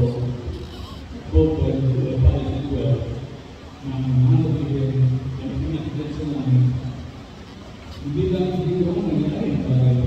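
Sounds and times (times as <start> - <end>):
man speaking over sound system: 0.0 - 0.7, 1.3 - 7.1, 7.9 - 10.0.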